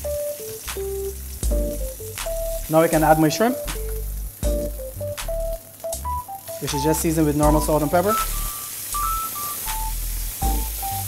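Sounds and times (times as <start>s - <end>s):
background music with bass: 0.0s - 11.0s
fish sizzling in a frying pan: 0.0s - 11.0s.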